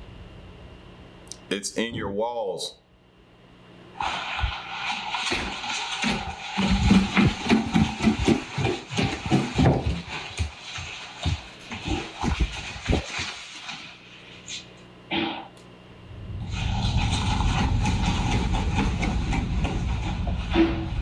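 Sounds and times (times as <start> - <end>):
knocks and rattles inside walls: 16.5 - 21.0.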